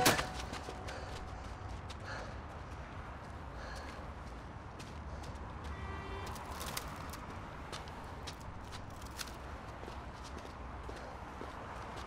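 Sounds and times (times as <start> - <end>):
faint footsteps on snow: 0.0 - 12.0.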